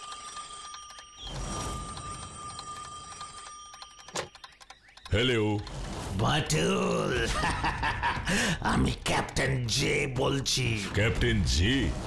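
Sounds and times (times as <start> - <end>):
telephone bell ringing: 0.0 - 4.4.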